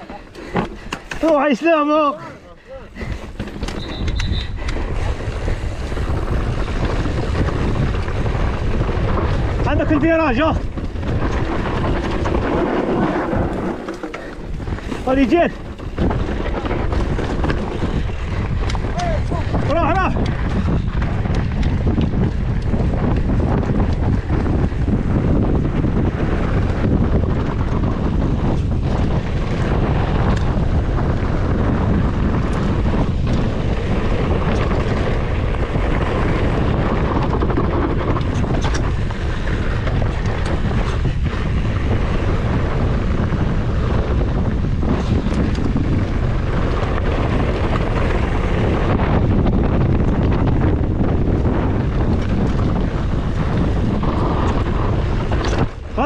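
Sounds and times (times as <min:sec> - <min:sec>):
bike knocks and rattles: 0:00.0 - 0:02.1, 0:03.0 - 0:56.0
wind buffeting microphone: 0:00.0 - 0:56.0
tyres rumbling over rocky dirt: 0:02.9 - 0:56.0.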